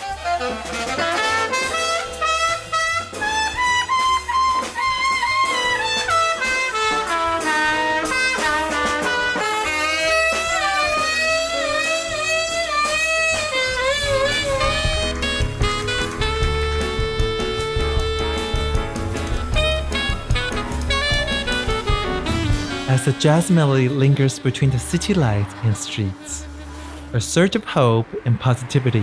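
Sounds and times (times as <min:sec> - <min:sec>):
trumpet melody: 0:00.0 - 0:27.2
saxophone: 0:00.0 - 0:27.5
bass notes: 0:00.0 - 0:29.0.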